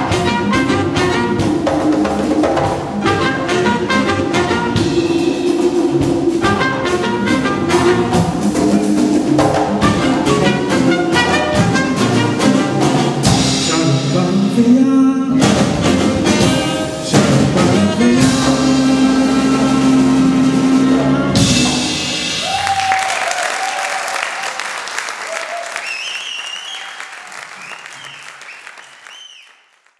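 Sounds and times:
jazz ensemble playing: 0:00.0 - 0:22.6
whistles and cheers: 0:22.4 - 0:29.7
audience applause: 0:22.4 - 0:29.9.

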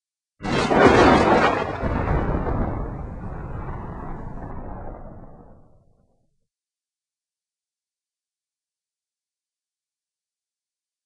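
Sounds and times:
loud rumbling boom: 0:00.4 - 0:06.2.

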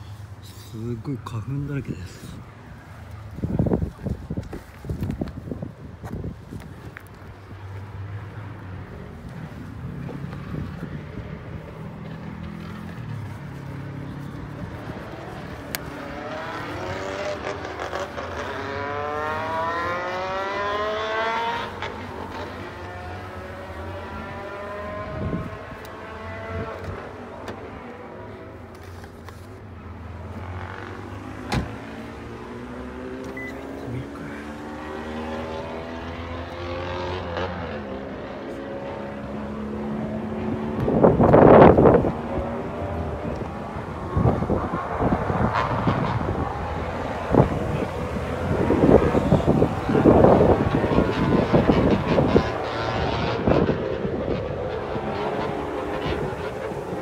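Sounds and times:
vehicle engines accelerating: 0:00.0 - 0:57.0.

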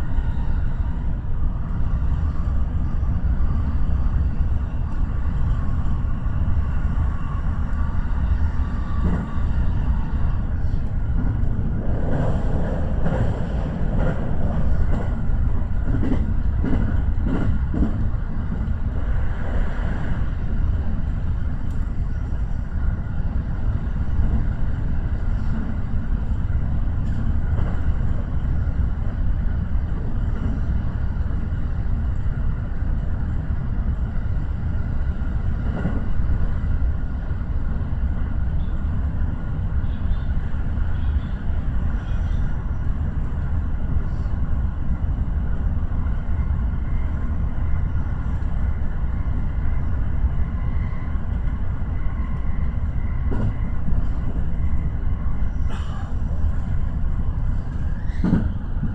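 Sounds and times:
train wheels rumbling on rail: 0:00.0 - 0:58.9.

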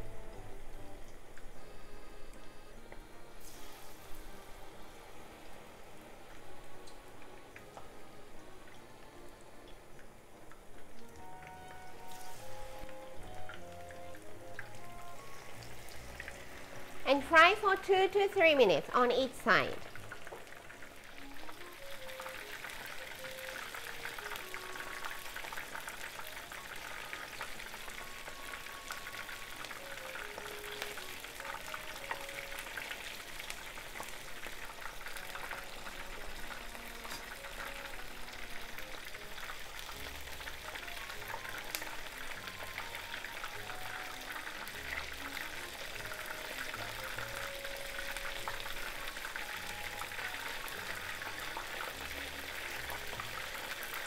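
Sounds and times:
oil sizzling deep-frying: 0:00.0 - 0:54.0.

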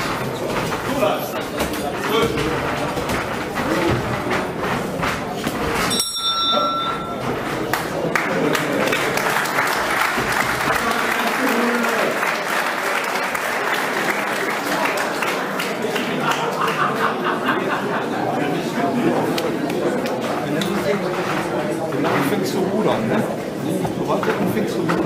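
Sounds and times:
boxing ring bell ringing: 0:05.8 - 0:07.6
crowd applauding: 0:07.3 - 0:22.2.

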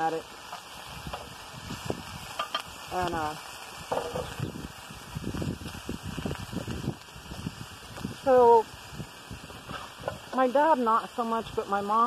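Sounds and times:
food frying in a skillet: 0:00.0 - 0:12.0
crackles and pops: 0:00.1 - 0:11.8
pan being handled: 0:03.9 - 0:04.4.

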